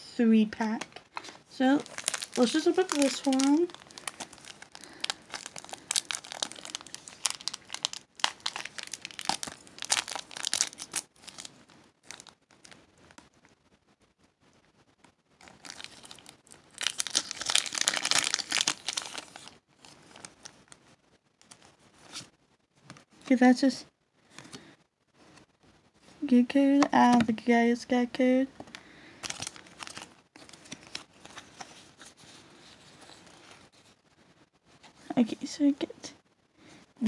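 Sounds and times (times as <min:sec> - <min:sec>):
foil wrapper crinkling and tearing: 0:01.1 - 0:13.3, 0:15.4 - 0:20.8, 0:29.2 - 0:33.7.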